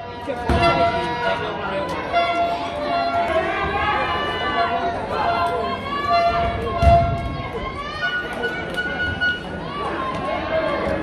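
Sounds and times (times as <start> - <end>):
spectators shouting: 0.0 - 11.0.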